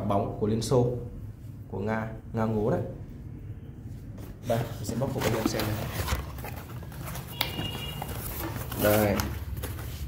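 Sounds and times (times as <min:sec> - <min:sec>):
cardboard box handled: 0:04.5 - 0:10.0.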